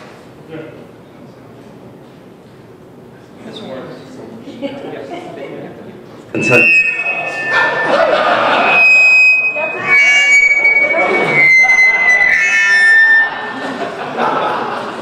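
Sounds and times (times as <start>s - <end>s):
microphone feedback whistling: 6.3s - 14.6s
man talking into microphone: 6.4s - 6.8s.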